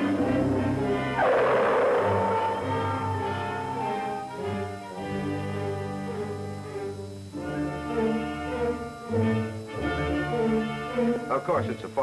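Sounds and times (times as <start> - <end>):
bowed strings sustained chords: 0.0 - 12.0.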